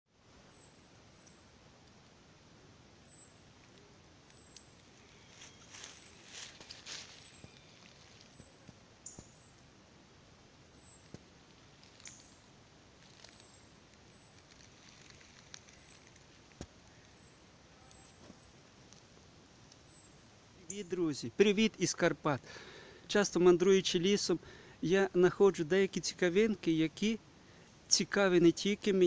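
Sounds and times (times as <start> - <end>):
twigs cracking: 3.6 - 9.4, 10.8 - 19.2
footsteps in dry leaves: 4.7 - 8.7, 10.8 - 17.2.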